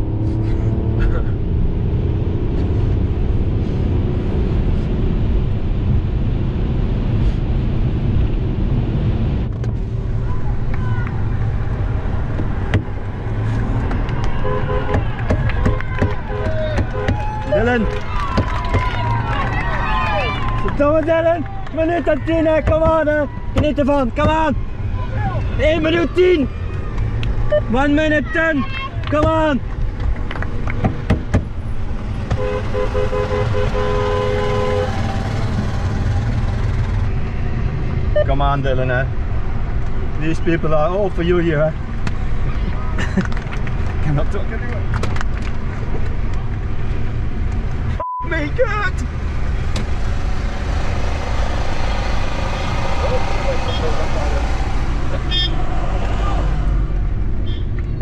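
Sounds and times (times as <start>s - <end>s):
engine and road rumble: 0.0s - 58.0s
sharp knocks: 12.3s - 13.0s, 14.8s - 17.2s, 30.7s - 31.5s
crowd shouting: 14.0s - 29.0s
car horn toots: 14.2s - 18.5s, 32.3s - 35.3s, 55.2s - 55.6s.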